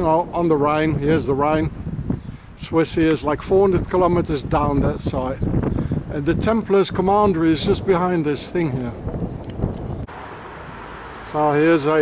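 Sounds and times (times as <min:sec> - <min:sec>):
low street rumble: 0:00.0 - 0:12.0.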